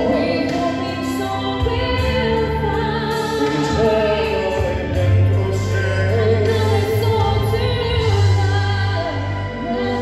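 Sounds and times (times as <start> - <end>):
held bass: 0.0 - 10.0.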